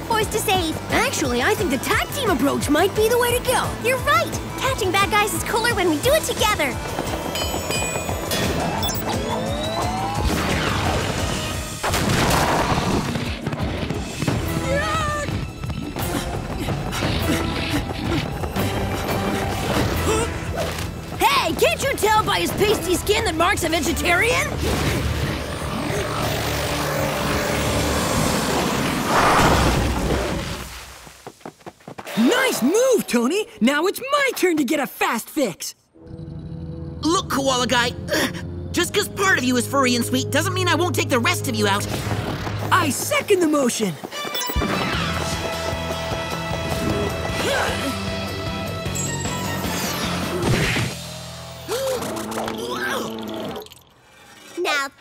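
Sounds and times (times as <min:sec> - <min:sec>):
cartoon action music: 0:07.8 - 0:13.2.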